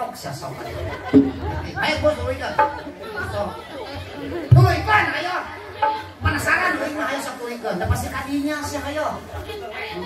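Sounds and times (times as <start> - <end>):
indistinct chatter of voices: 0.0 - 10.0
short knock: 1.2 - 1.8.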